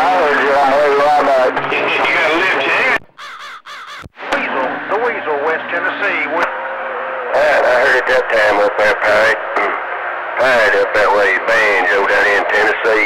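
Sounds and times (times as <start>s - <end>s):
garbled radio voices: 0.0s - 13.0s.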